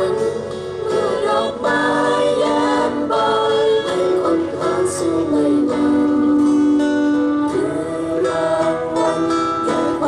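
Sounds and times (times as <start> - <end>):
acoustic guitar: 0.0 - 10.0
group singing in chorus: 0.0 - 10.0.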